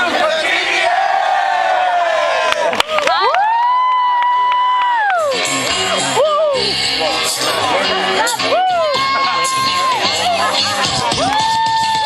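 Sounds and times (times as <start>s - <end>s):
young men yelling a cheer: 8.2s - 10.4s.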